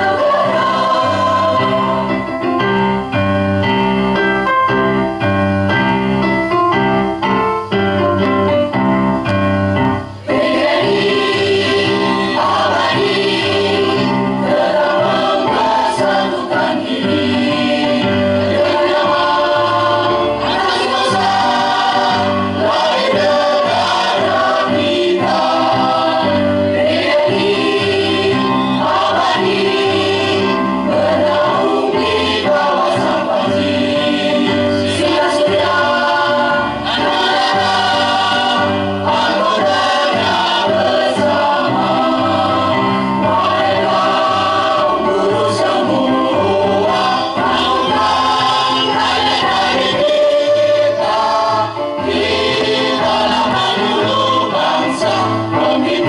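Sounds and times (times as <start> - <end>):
mixed choir singing: 0.0 - 3.0, 9.9 - 56.0.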